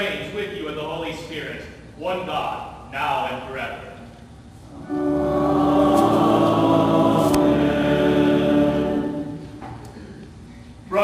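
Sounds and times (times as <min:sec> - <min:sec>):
voices singing held chord: 0:04.7 - 0:09.6
church organ: 0:04.7 - 0:09.7.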